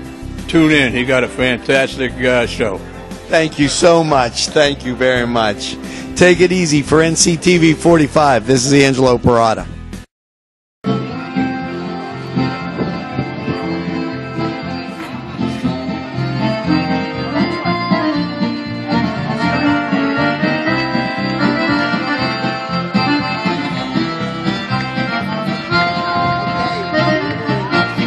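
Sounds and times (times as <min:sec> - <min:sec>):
accordion music: 0:00.0 - 0:10.1, 0:10.8 - 0:28.0.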